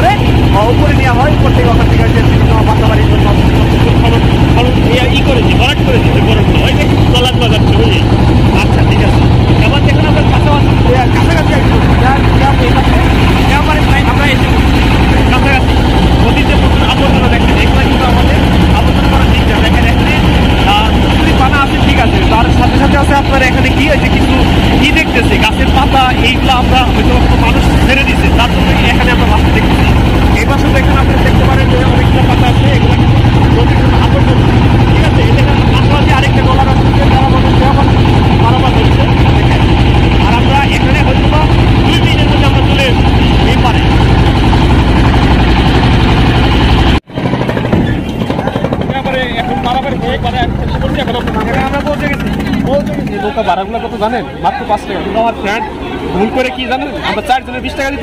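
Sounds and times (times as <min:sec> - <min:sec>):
people talking: 0:00.0 - 0:44.3, 0:47.4 - 0:58.0
motorboat engine running: 0:00.0 - 0:58.0.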